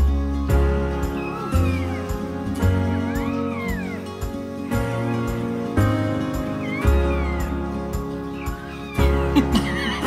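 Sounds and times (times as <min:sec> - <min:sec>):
background music: 0:00.0 - 0:10.0
puppy squeaking high cries: 0:01.0 - 0:09.5.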